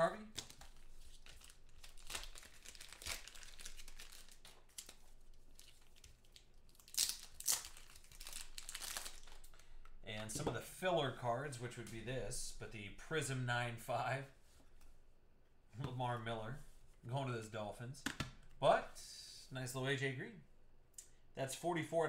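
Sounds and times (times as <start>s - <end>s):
plastic wrapping crinkling: 0.3s - 9.6s.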